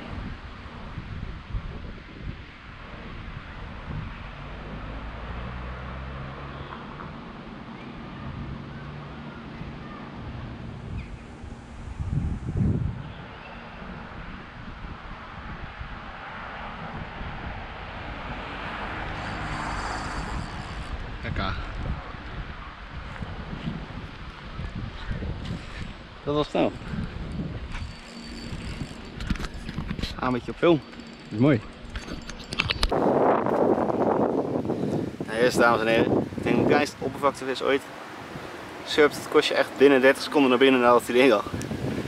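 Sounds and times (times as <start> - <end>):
wind buffeting microphone: 0.0 - 5.5, 9.4 - 42.0
vehicle engine hum passing: 3.0 - 26.2, 37.0 - 42.0.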